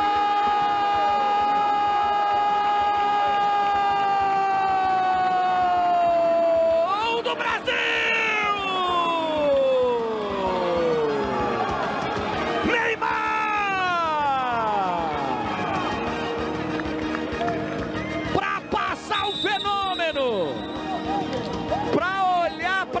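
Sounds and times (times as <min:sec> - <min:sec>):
commentator shouting: 0:00.0 - 0:11.8, 0:12.6 - 0:15.4, 0:18.3 - 0:21.2, 0:21.8 - 0:23.0.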